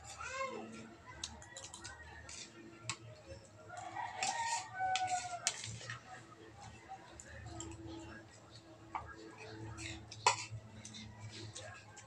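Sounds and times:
rooster crowing: 0:03.8 - 0:05.5.

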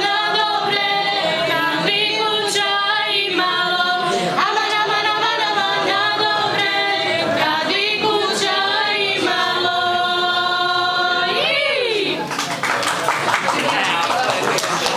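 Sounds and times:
women and girls singing a cappella: 0:00.0 - 0:12.3.

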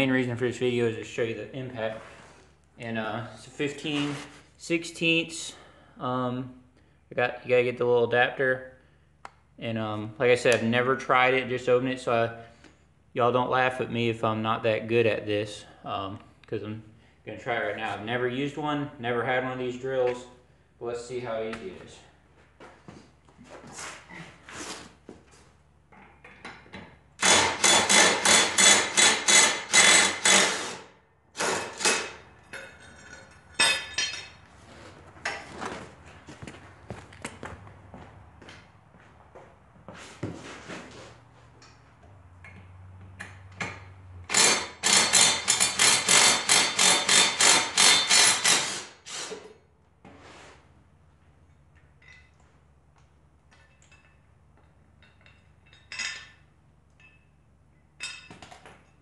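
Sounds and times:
impact driver hammering: 0:27.2 - 0:32.2, 0:43.6 - 0:49.4
metal clinks of bolts handled: 0:52.0 - 0:52.4.

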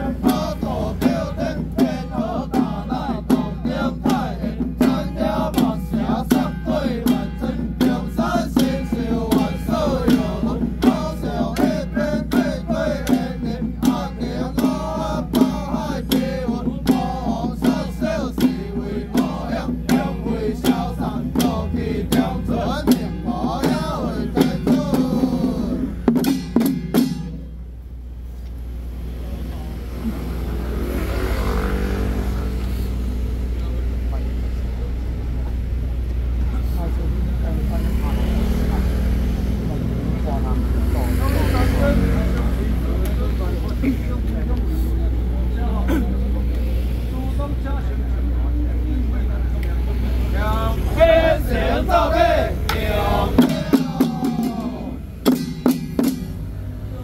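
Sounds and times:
men chanting together: 0:00.0 - 0:26.2, 0:37.8 - 0:43.9, 0:50.0 - 0:56.1
low engine-like rumble: 0:00.0 - 0:26.7, 0:32.1 - 0:57.0
frame drum strokes: 0:00.0 - 0:27.6, 0:52.7 - 0:56.9.

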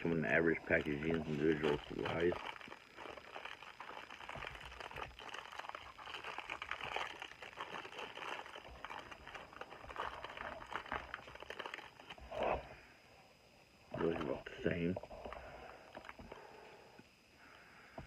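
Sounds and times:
plastic wrapper crinkling: 0:00.0 - 0:12.3, 0:15.2 - 0:16.2.

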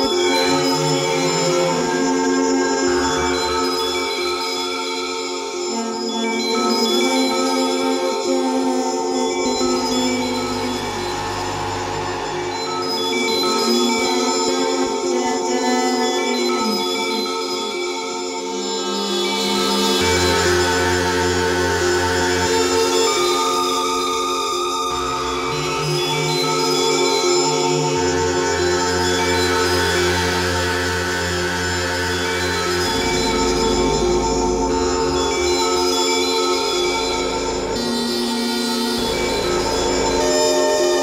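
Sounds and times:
sustained synthesizer drones: 0:05.4 - 0:17.0, 0:27.6 - 0:41.0.

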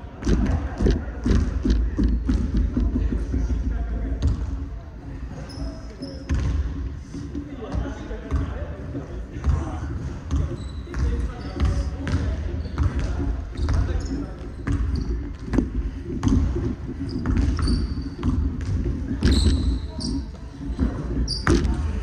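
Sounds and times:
players' voices: 0:00.0 - 0:22.0
sneaker squeaks: 0:05.4 - 0:06.8, 0:10.3 - 0:22.0
basketballs bouncing on hardwood: 0:06.3 - 0:06.8, 0:10.3 - 0:19.8.

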